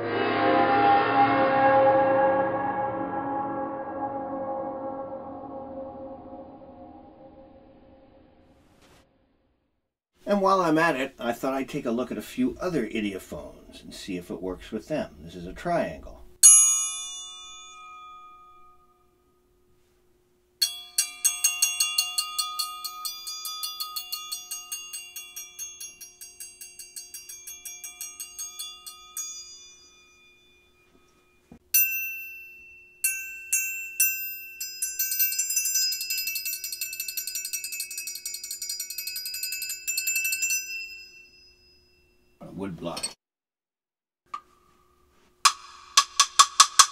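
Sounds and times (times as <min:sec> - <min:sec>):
triangle ringing in water: 0:16.4 - 0:19.1, 0:20.6 - 0:42.4.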